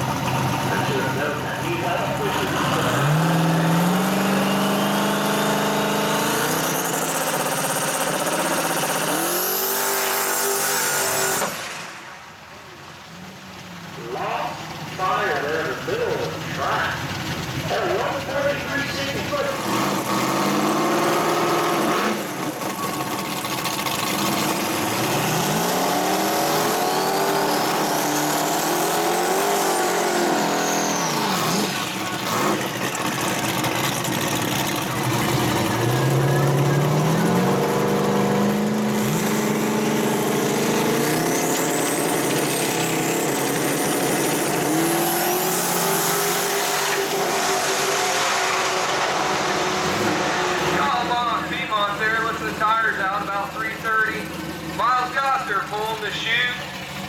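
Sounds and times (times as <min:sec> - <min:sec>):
car engine revving: 0:00.0 - 0:57.0
second car engine running: 0:00.0 - 0:57.0.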